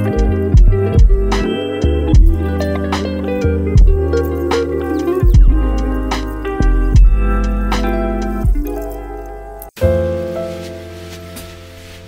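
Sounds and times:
background music with low bass: 0.0s - 12.0s.

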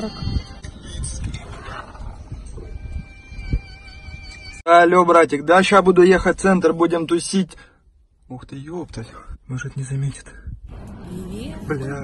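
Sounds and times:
wind buffeting microphone: 0.0s - 4.5s.

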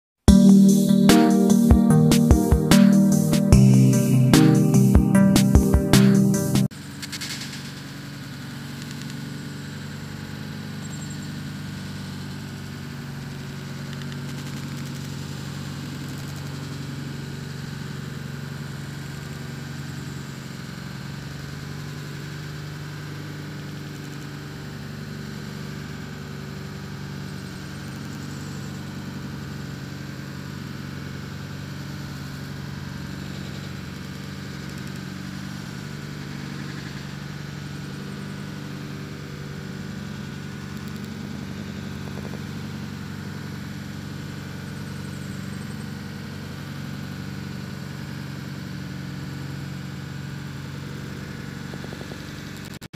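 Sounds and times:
car engine idling: 6.7s - 52.6s.

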